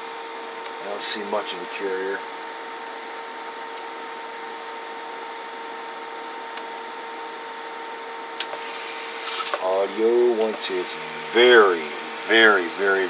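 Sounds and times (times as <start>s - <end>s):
electronic equipment humming: 0.0s - 13.0s.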